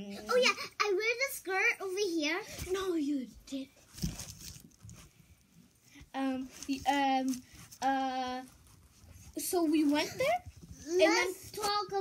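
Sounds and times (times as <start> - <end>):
faint rustling: 0.0 - 12.0.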